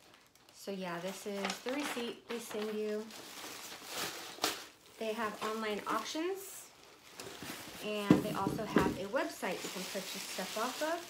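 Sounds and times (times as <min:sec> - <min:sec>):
paper and plastic crinkling: 0:00.0 - 0:11.0.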